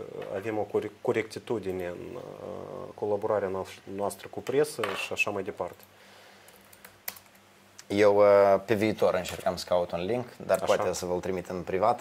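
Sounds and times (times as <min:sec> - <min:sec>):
man speaking: 0:00.0 - 0:05.8, 0:07.8 - 0:12.0
laptop keys clicking: 0:06.5 - 0:07.4.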